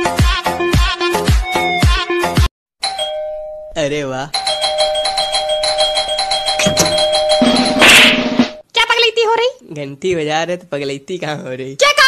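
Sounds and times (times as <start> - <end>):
electronic doorbell ringing: 2.8 - 7.8.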